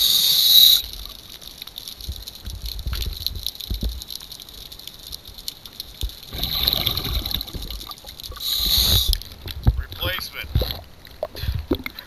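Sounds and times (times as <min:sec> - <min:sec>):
underwater gurgle: 0:00.0 - 0:12.0
dull underwater knocks and clicks: 0:00.9 - 0:12.0.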